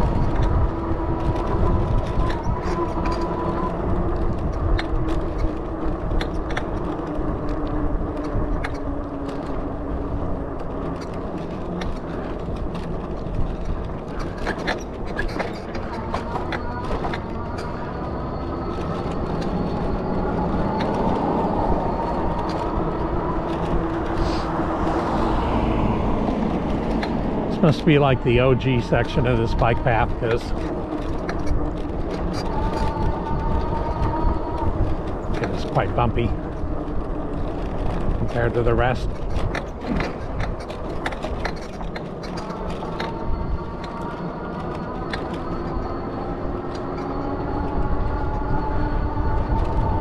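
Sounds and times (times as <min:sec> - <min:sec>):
bicycle rattles and knocks: 0:00.0 - 0:50.0
bicycle tyre noise: 0:00.0 - 0:50.0
wind rumble on microphone: 0:00.0 - 0:50.0
faint whine: 0:15.5 - 0:37.2.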